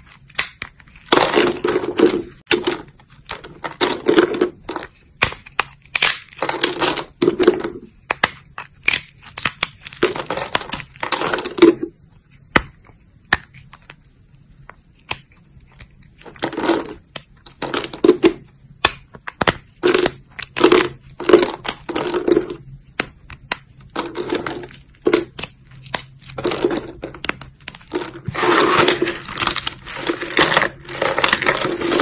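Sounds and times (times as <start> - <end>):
dry soap crunching and snapping: 0.0 - 7.2, 8.0 - 11.8, 14.9 - 32.0.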